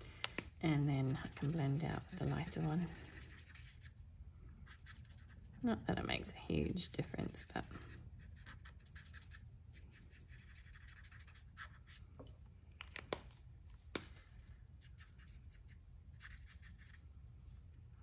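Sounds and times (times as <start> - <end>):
marker scratching on card: 1.0 - 4.0, 4.6 - 5.6, 7.3 - 12.0, 14.5 - 17.0.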